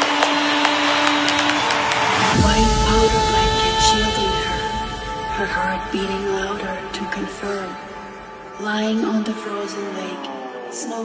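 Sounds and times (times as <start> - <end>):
hair dryer running: 0.0 - 5.3.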